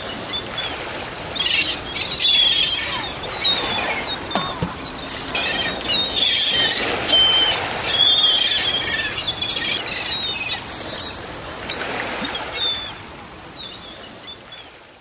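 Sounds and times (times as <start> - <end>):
songbirds chirping: 0.0 - 14.9.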